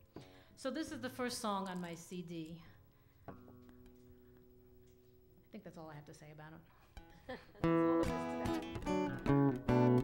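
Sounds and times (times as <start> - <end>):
acoustic guitar chord: 7.6 - 10.0.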